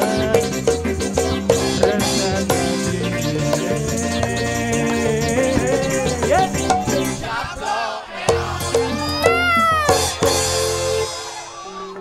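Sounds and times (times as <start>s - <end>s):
bamboo gamelan music: 8.3s - 12.0s
high meow-like cry: 8.9s - 10.2s.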